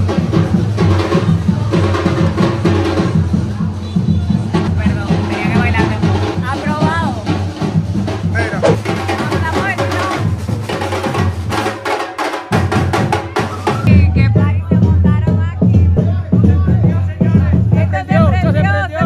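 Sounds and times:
crowd voices: 0.0 - 10.8, 12.4 - 19.0
bass drum: 0.0 - 11.8, 12.5 - 19.0
street percussion band: 0.0 - 19.0.

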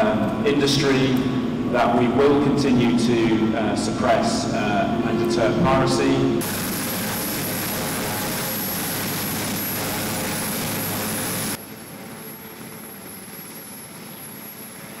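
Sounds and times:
helicopter engines running: 0.0 - 15.0
thin high whine: 0.0 - 15.0.

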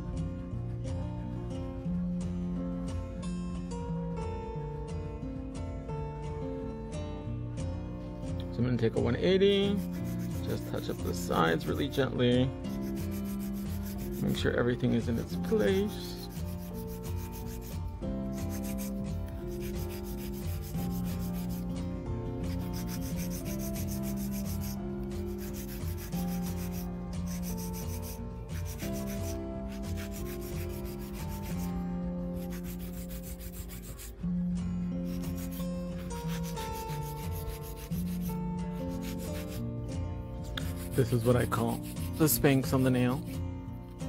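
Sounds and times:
nail file rubbing on nail: 9.8 - 12.0, 12.7 - 14.4, 15.0 - 21.7, 22.4 - 34.1, 35.1 - 39.6, 40.4 - 43.4.

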